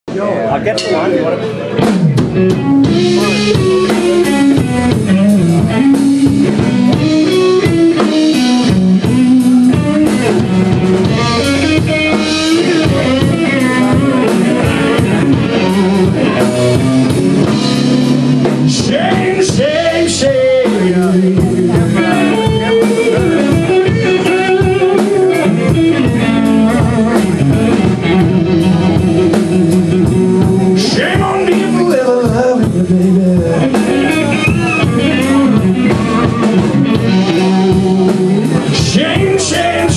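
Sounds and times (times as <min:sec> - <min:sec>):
bass guitar: 0:00.1 - 0:39.9
drum kit beat: 0:00.1 - 0:39.9
electric guitar lead: 0:00.1 - 0:39.9.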